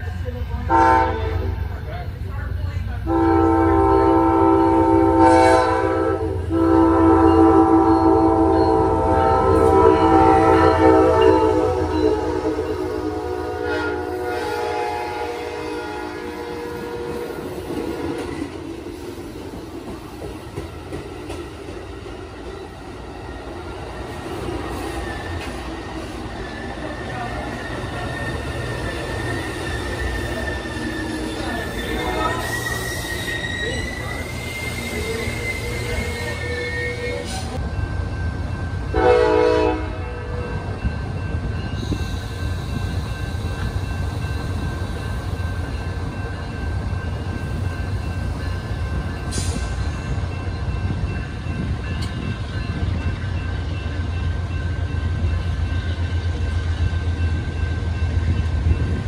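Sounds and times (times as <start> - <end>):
train rumbling: 0.0 - 59.0
locomotive air horn blasts: 0.7 - 1.6, 3.1 - 17.4, 38.9 - 40.5
wheel and brake squeal: 26.4 - 37.6.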